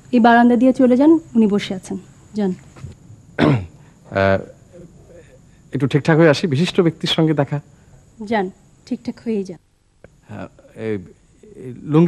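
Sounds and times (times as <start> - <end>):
man clearing his throat: 3.4 - 5.4.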